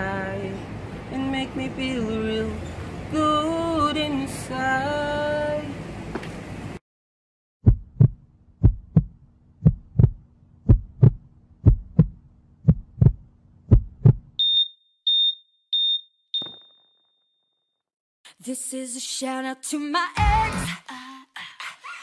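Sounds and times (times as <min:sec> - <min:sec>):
heartbeat thumps: 0:07.6 - 0:14.4
steady low hum: 0:07.7 - 0:14.4
heart monitor beeps: 0:14.4 - 0:16.8.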